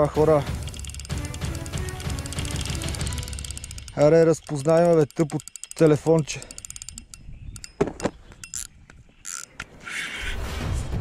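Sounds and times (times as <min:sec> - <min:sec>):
background music: 0:00.0 - 0:04.9
clicks and rattles: 0:00.4 - 0:08.7.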